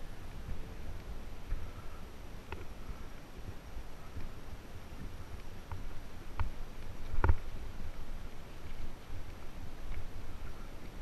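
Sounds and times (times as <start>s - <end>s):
wind buffeting camera: 0.0s - 11.0s.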